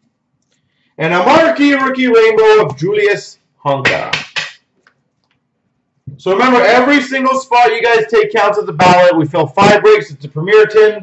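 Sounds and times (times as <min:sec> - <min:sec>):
man's voice: 0:01.0 - 0:04.5, 0:06.1 - 0:11.0.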